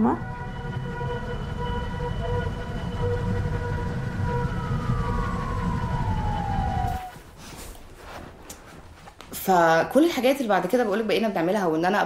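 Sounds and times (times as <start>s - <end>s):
droning held tone: 0.0s - 7.2s
low rumble: 0.0s - 7.3s.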